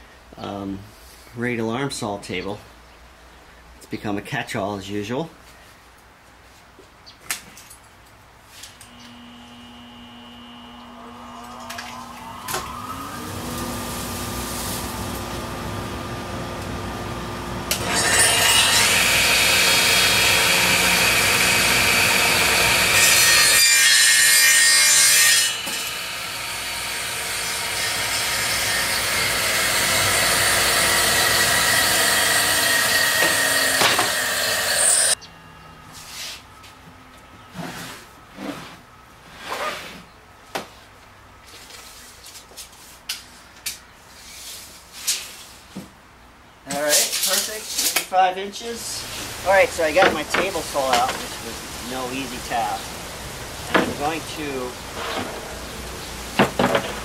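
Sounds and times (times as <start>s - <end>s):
power saw cutting wood: 8.8s - 35.2s, 48.6s - 52.8s, 53.6s - 57.0s.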